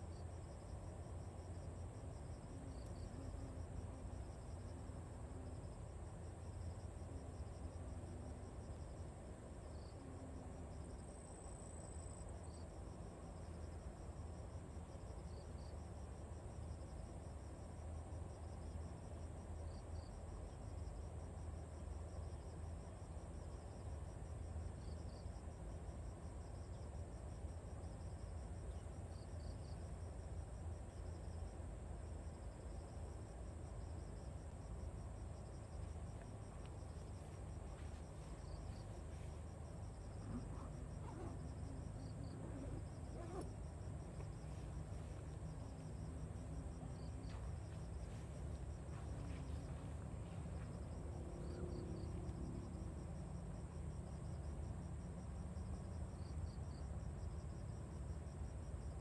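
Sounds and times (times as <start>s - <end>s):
insects chirring: 0.0s - 59.0s
low steady rumble: 0.0s - 59.0s
insect double chirp: 26.1s - 54.4s.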